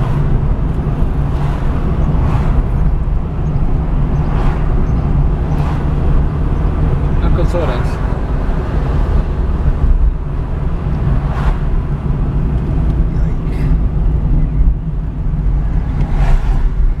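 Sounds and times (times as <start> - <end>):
car engine and tyres rumbling: 0.0 - 17.0.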